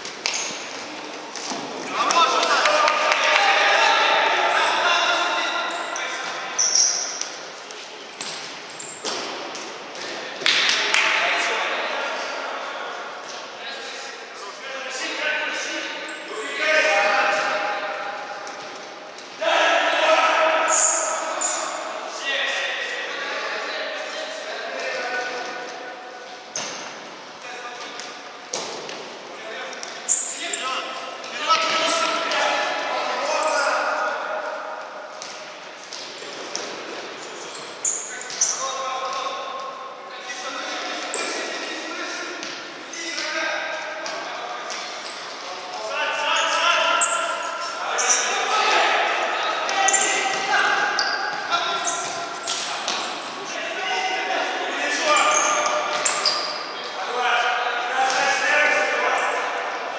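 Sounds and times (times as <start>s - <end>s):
players shouting in a hall: 1.8s - 6.6s, 14.2s - 26.2s, 45.8s - 59.9s.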